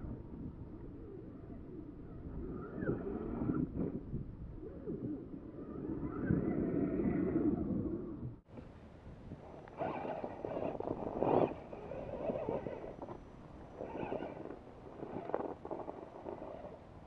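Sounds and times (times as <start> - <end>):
wind noise on microphone: 0.0 - 17.0.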